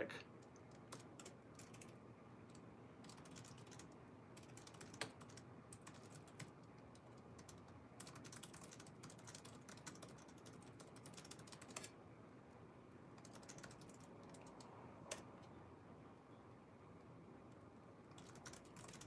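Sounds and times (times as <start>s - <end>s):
typing on keyboard: 0.4s - 12.0s, 13.1s - 15.5s, 17.5s - 19.0s.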